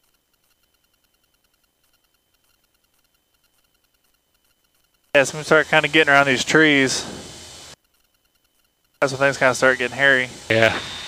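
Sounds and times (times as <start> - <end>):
faint intercom hiss: 5.2 - 7.8, 9.0 - 11.0.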